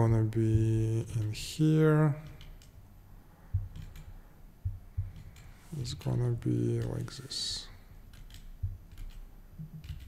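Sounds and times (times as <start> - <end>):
keyboard and mouse clicks: 2.2 - 2.8, 3.5 - 5.6, 6.6 - 7.2, 8.0 - 10.0.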